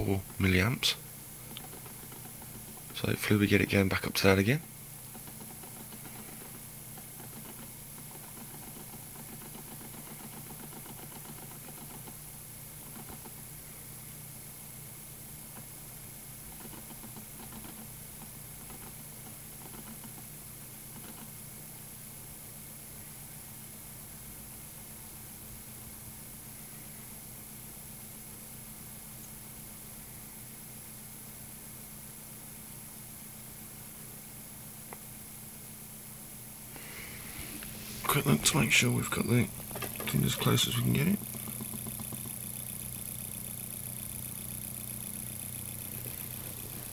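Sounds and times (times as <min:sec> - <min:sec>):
magnet motor humming: 0:05.0 - 0:12.2, 0:36.7 - 0:46.9.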